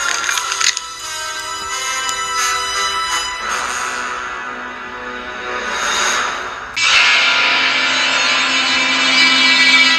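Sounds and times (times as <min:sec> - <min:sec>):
loud distorted music chord: 0:01.2 - 0:09.9.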